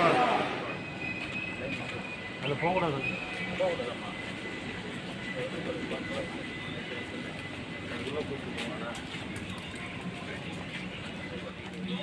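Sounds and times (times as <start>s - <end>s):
faint high whine: 0.0s - 10.4s
faint voices: 0.0s - 12.0s
machinery noise: 0.0s - 12.0s.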